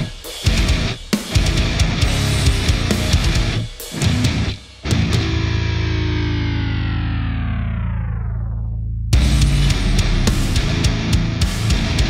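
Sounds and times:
distorted electric guitar chord: 0.5s - 12.0s
low bass note: 5.4s - 10.7s.

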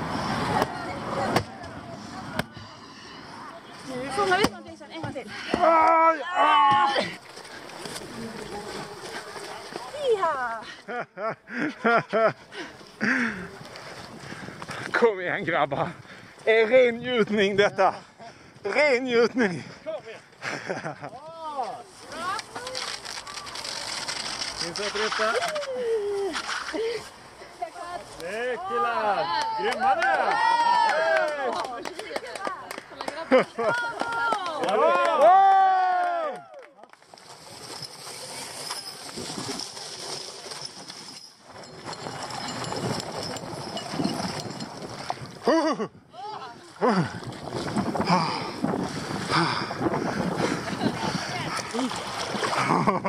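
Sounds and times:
outdoor rustling: 0.0s - 34.8s, 36.8s - 53.0s
people calling out and shouting: 0.4s - 7.2s
people shouting: 5.4s - 7.2s.

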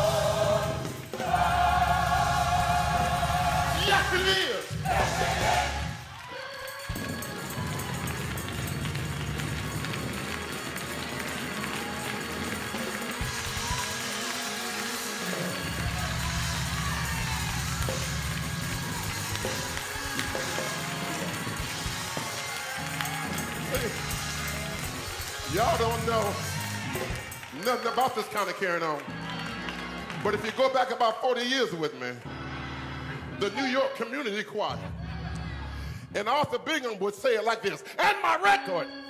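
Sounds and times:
congregation voices: 0.0s - 9.0s
church instrumental music: 0.0s - 39.0s.

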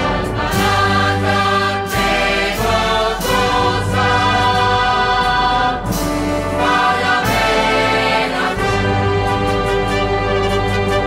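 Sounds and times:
percussion strikes: 0.0s - 11.0s
wind band playing a march: 6.5s - 11.0s.

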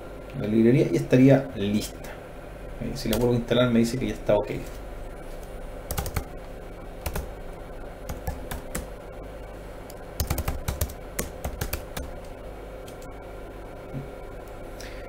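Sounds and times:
computer keyboard typing: 5.9s - 6.4s, 7.0s - 7.3s, 8.0s - 8.9s, 9.9s - 13.1s.

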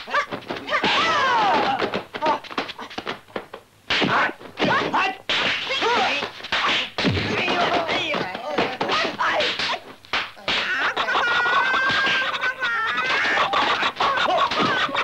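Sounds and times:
fighters yelling and grunting: 0.1s - 1.9s
punch and kick impacts: 3.9s - 10.7s.

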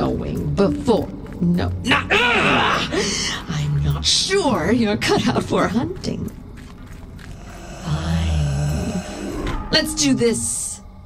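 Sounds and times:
deep low horror drone: 6.2s - 11.0s.

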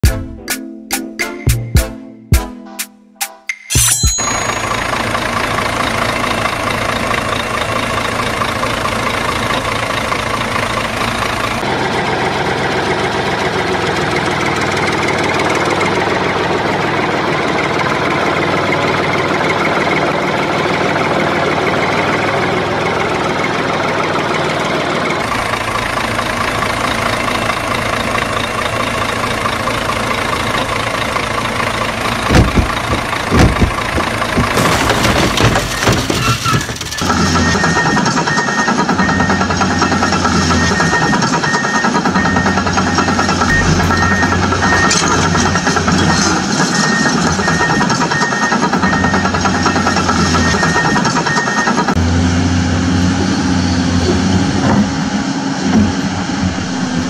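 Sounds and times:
engine idling: 4.3s - 57.0s
loud knocks: 32.2s - 37.3s.

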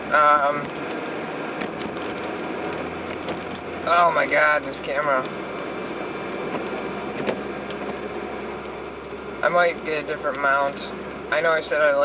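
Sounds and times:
road and engine noise inside car: 0.0s - 12.0s.

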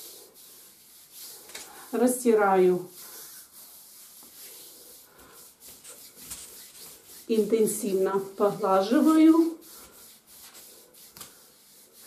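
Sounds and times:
palms rubbing on skin: 0.0s - 12.0s.

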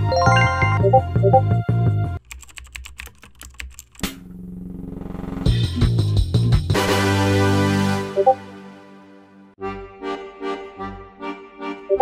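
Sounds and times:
keyboard typing clicks: 2.2s - 4.2s.

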